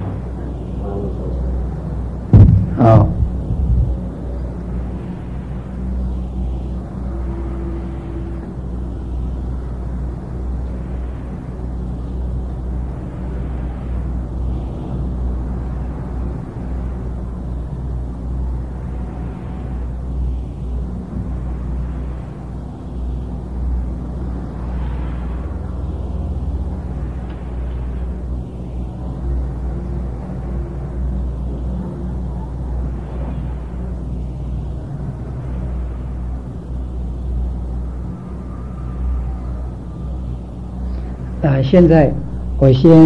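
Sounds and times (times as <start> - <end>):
low electrical hum: 0.0 - 43.0
tape hiss: 0.0 - 43.0.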